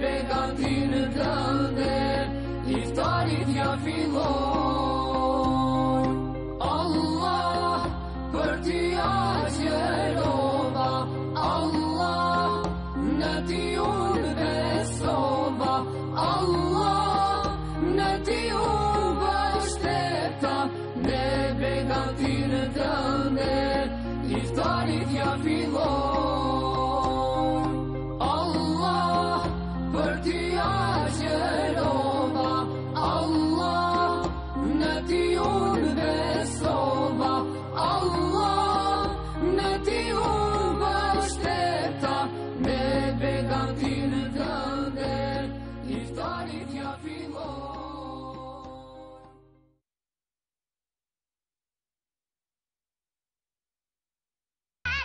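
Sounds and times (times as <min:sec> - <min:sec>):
person singing devotional song: 0:00.0 - 0:49.4.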